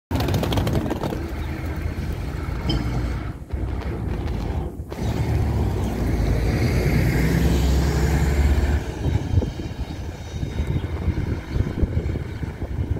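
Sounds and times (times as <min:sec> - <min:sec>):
bus engine driving past: 0:00.1 - 0:12.9.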